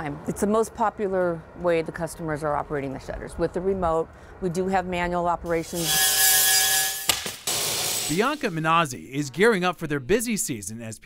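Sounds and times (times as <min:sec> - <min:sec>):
angle grinder cutting metal: 0:05.6 - 0:08.6.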